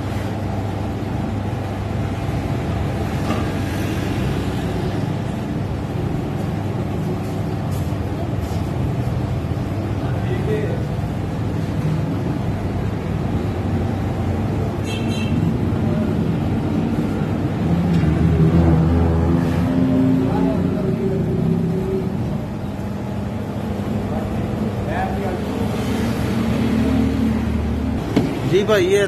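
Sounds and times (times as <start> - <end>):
low mechanical hum: 0.0 - 29.0
traffic: 0.0 - 29.0.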